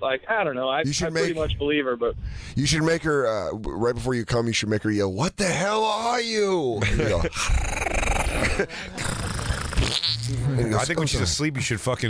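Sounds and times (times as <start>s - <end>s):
man growling: 7.0s - 10.7s.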